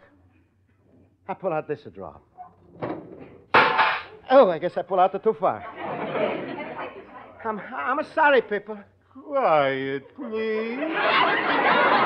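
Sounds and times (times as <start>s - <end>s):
drawer crashing: 2.8s - 4.1s.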